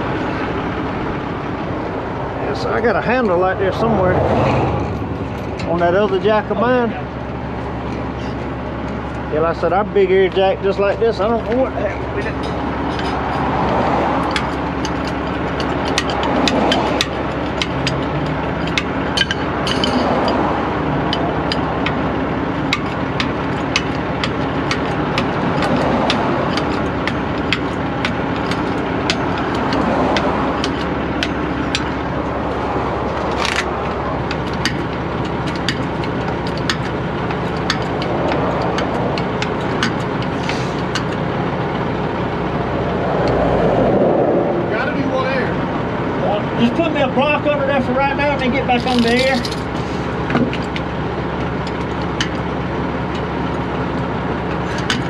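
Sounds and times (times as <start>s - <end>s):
truck engine idling: 0.0s - 55.0s
hydraulic jack clicking: 12.3s - 41.8s, 48.7s - 55.0s.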